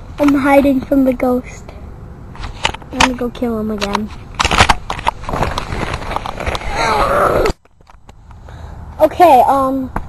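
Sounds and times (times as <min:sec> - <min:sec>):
microphone handling noise: 0:03.8 - 0:08.3.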